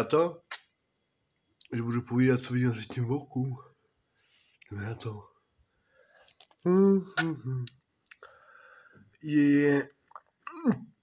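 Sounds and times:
faint steady hiss: 0.0 - 11.0
man's wordless vocal sound: 6.6 - 7.8.

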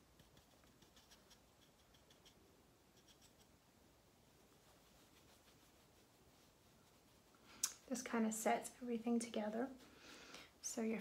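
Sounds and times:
makeup brush scratching in powder: 0.0 - 3.6, 4.3 - 9.9.

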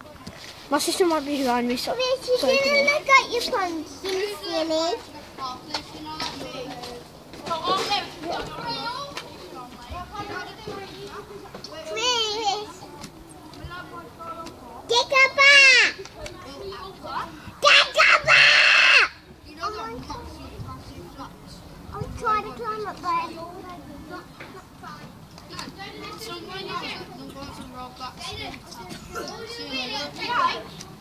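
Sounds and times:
children shouting and screaming: 2.0 - 5.0, 14.9 - 20.9, 21.9 - 31.0
child's loud high shout: 15.0 - 16.0, 17.6 - 19.3.

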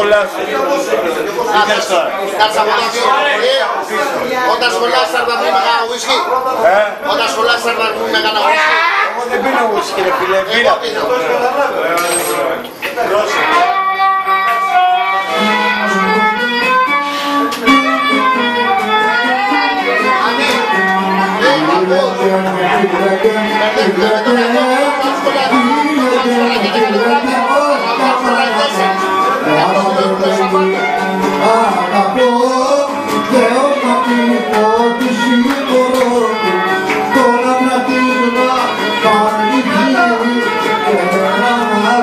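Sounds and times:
plucked string accompaniment: 11.2 - 42.0
lyra playing lively melody: 13.2 - 42.0
person singing: 13.7 - 42.0.

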